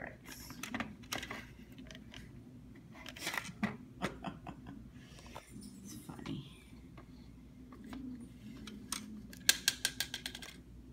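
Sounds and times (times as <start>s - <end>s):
faint low hum: 0.0s - 10.9s.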